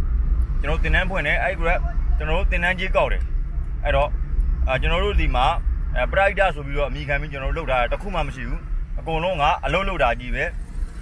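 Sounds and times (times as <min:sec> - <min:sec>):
car interior rumble: 0:00.0 - 0:11.0
man speaking: 0:00.6 - 0:03.2, 0:03.8 - 0:04.1, 0:04.7 - 0:10.6.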